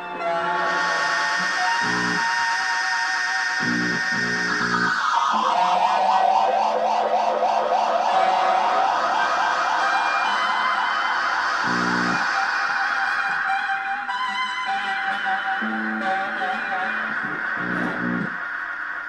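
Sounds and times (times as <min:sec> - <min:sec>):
rock music with wavering guitar: 0:01.6 - 0:02.2, 0:03.6 - 0:05.0, 0:11.7 - 0:12.4, 0:13.2 - 0:18.4.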